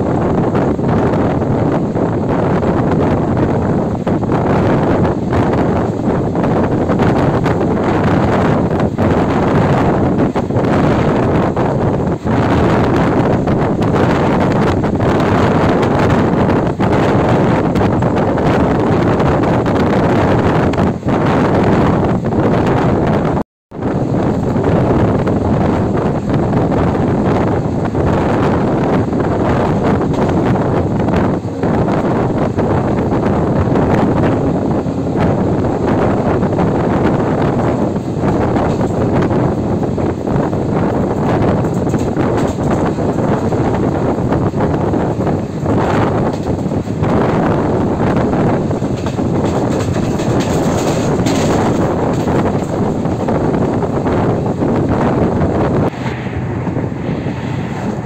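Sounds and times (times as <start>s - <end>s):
train wheels rumbling on rail: 0.0s - 58.0s
wind buffeting microphone: 0.0s - 58.0s.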